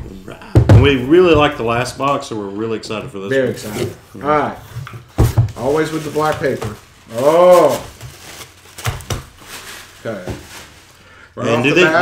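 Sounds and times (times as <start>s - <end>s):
tissue paper rustling: 5.5s - 12.0s.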